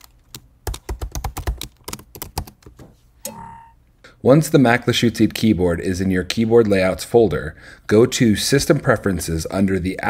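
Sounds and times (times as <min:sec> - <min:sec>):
typing on computer keyboard: 0:00.0 - 0:02.8
brief tone: 0:03.2 - 0:03.8.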